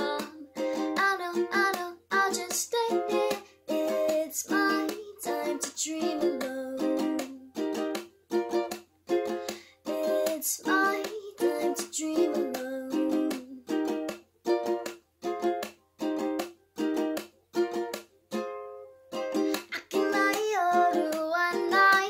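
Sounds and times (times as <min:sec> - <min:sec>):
woman singing: 0:00.0 - 0:07.6, 0:09.8 - 0:13.7, 0:19.5 - 0:22.0
ukulele strumming: 0:00.0 - 0:22.0.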